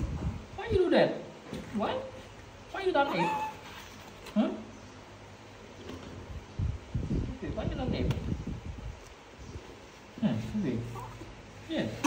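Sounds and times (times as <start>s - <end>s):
baby monkey squeaky calls: 3.1s - 4.0s.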